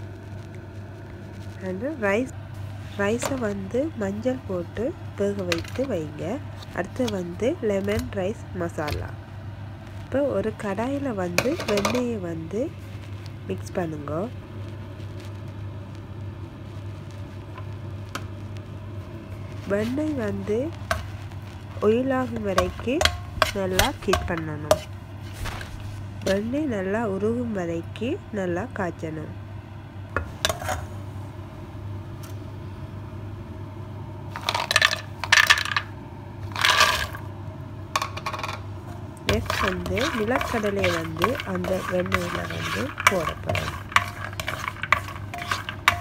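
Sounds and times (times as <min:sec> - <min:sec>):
low hum: 0:00.0 - 0:46.0
butter sizzling in pan: 0:14.5 - 0:26.3, 0:38.0 - 0:46.0
peanuts rattling in a pan: 0:34.3 - 0:37.3, 0:38.0 - 0:38.6, 0:39.3 - 0:46.0.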